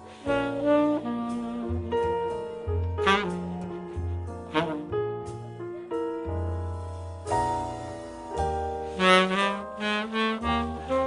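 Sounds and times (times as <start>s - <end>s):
wind instrument melody: 0.0s - 6.5s, 7.6s - 11.0s
low bass part: 0.0s - 11.0s.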